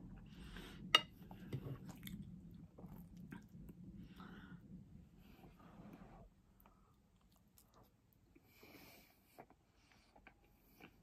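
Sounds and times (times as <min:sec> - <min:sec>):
chewing and mouth sounds: 0:06.6 - 0:08.3.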